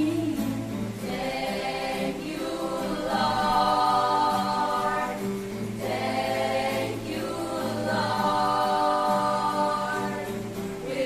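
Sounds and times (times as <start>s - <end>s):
choir of young voices singing: 0.0s - 11.0s.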